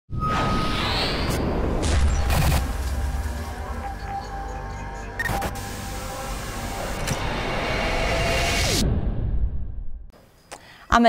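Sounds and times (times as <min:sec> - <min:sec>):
sharp hits: 0:00.3 - 0:04.4.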